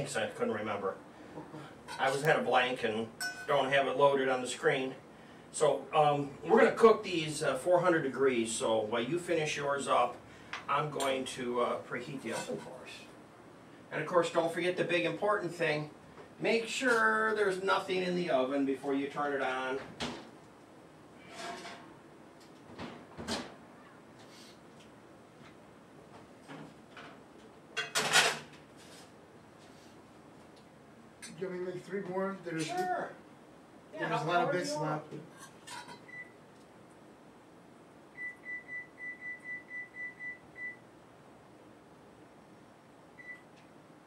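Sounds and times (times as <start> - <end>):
high-pitched appliance beeps: 36.0 - 36.4, 38.1 - 40.8, 43.2 - 43.5.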